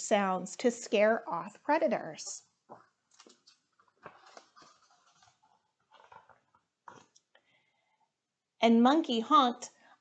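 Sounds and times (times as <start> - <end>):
paper pages being turned: 2.7 - 7.2.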